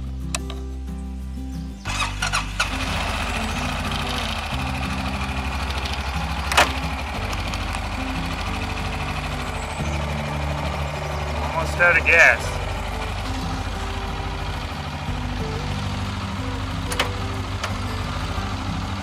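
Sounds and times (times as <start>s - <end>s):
background music: 0.0s - 19.0s
atv engine starting and idling: 1.8s - 19.0s.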